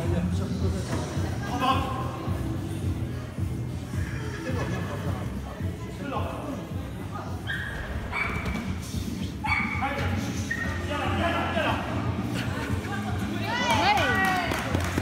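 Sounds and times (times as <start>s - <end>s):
music: 0.0s - 15.0s
dog barking: 7.5s - 8.6s, 9.4s - 9.8s.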